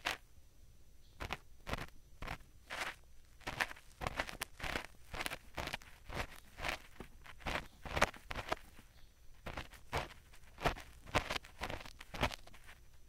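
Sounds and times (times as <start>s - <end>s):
ear pick scraping microphone: 1.2s - 12.9s.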